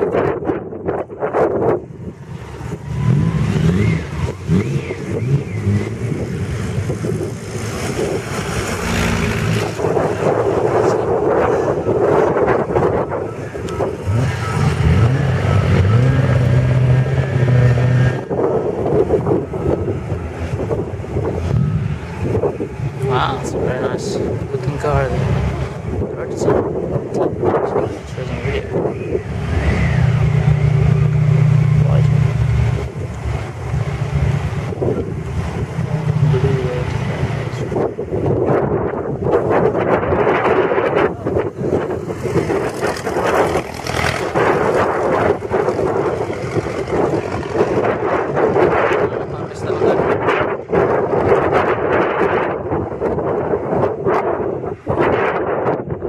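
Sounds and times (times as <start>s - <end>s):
wind buffeting microphone: 0.0s - 56.0s
racing car engines pulling away: 2.1s - 51.7s.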